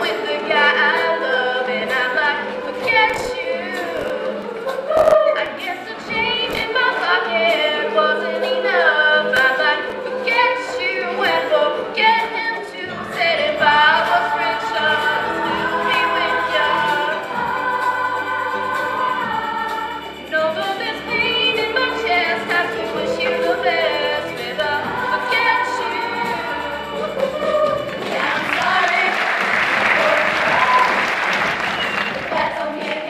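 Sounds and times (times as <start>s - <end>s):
girls' choir singing pop song: 0.0s - 33.0s.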